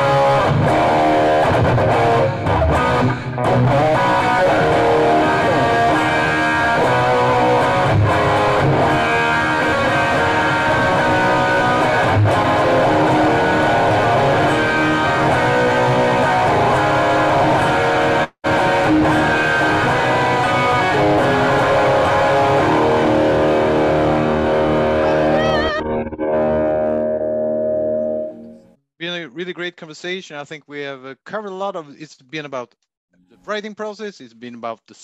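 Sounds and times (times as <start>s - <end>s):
electric guitar solo: 0.0s - 28.6s.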